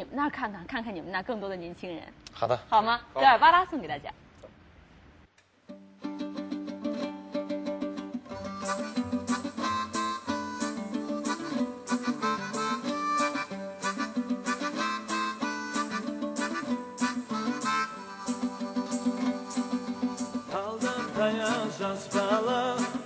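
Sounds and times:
strummed string instruments: 5.6 - 23.0
harmonica playing held notes: 8.3 - 23.0.

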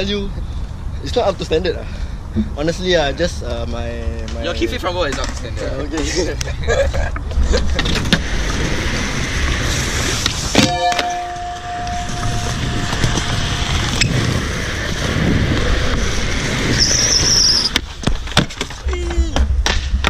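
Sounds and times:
skateboard wheels rolling on concrete: 2.3 - 20.0
high squeal: 10.6 - 14.8, 16.2 - 17.7
skateboard tail popping crack: 19.4 - 20.0.

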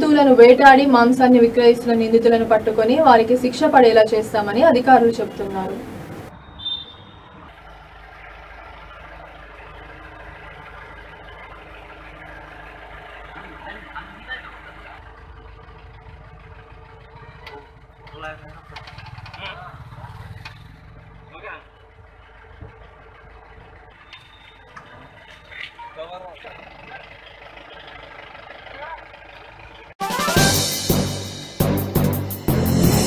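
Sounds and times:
people talking and calling: 0.0 - 6.3, 13.0 - 30.8
vehicle engine idling: 0.0 - 33.0.

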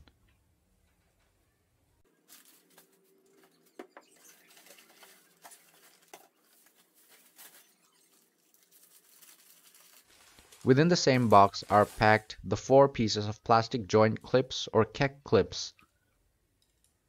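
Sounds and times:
rustling of paper packing and cardboard: 2.1 - 12.5.

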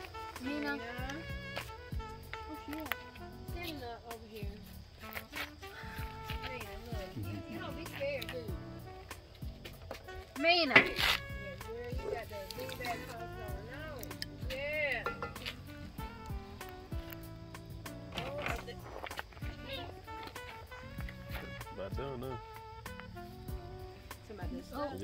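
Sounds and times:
music with held notes: 0.0 - 25.0.

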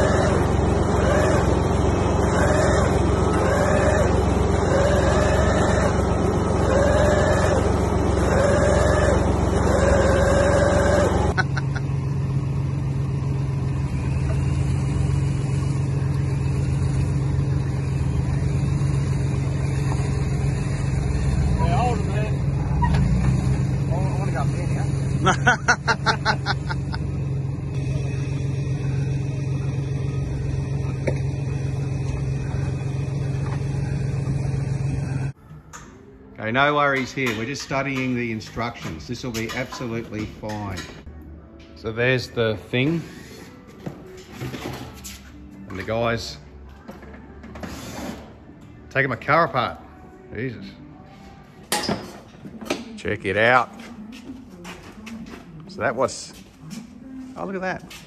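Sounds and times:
off-road vehicle engine running: 0.0 - 35.5.

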